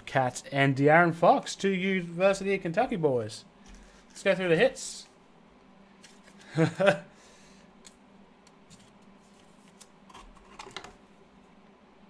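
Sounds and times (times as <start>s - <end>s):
cards being shuffled: 6.0s - 6.5s, 8.6s - 11.0s.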